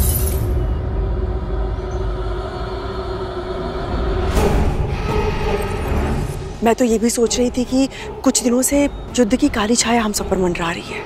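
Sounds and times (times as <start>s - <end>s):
low drone score music: 0.0s - 11.0s.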